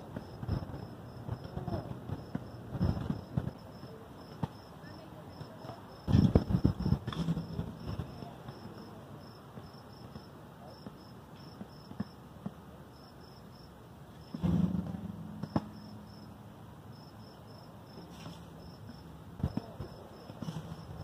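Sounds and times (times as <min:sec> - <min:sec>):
crickets chirping: 0:00.0 - 0:14.6, 0:15.3 - 0:21.0.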